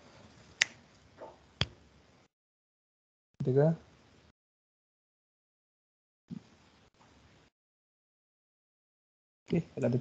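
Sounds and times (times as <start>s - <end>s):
low background hiss: 9.5s - 10.0s.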